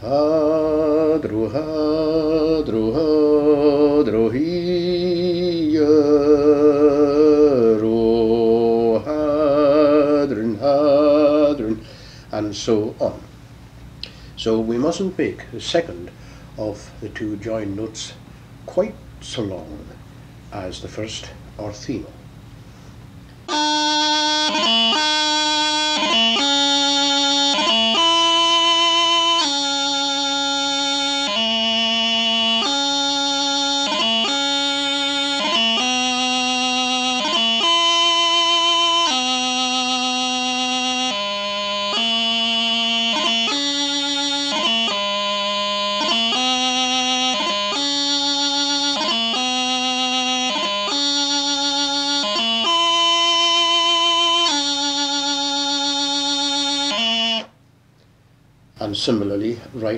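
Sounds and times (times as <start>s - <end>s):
practice chanter melody: 0.0s - 13.4s, 23.4s - 57.6s.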